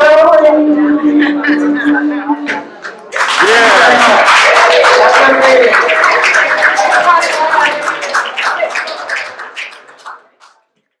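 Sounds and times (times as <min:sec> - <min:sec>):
audience applauding: 0:02.8 - 0:10.6
people cheering: 0:02.9 - 0:10.1.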